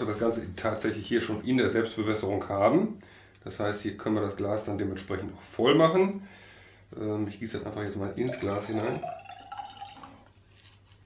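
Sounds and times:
water dripping in glass bottle: 8.0s - 10.5s.

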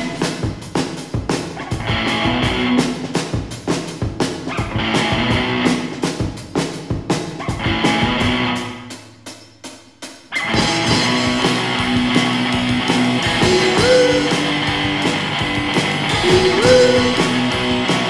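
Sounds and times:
guitar and drums music: 0.0s - 18.0s
guitar slides: 10.4s - 18.0s.

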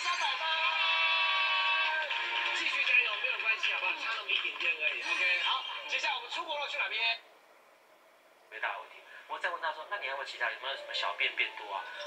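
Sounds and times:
electronic jingle on television: 0.0s - 6.9s, 9.8s - 12.0s.

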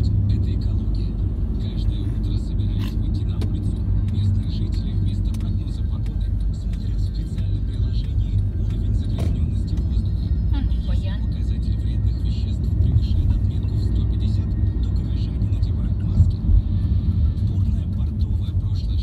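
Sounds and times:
car engine and road noise in cabin: 0.0s - 19.0s.

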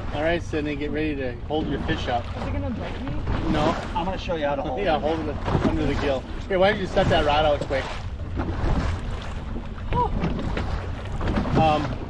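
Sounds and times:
boat motor droning: 0.0s - 12.0s.

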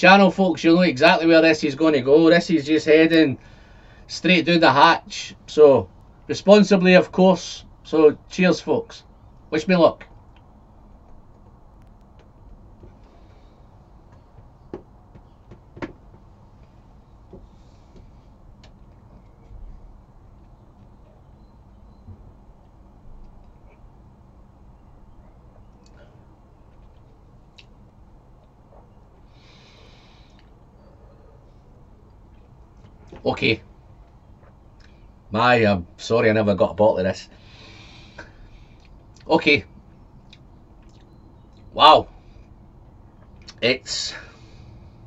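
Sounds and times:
man breathing quietly: 3.4s - 4.1s, 12.3s - 15.4s, 16.3s - 19.5s, 25.8s - 26.6s, 28.7s - 33.0s, 37.3s - 39.1s, 44.1s - 45.0s.

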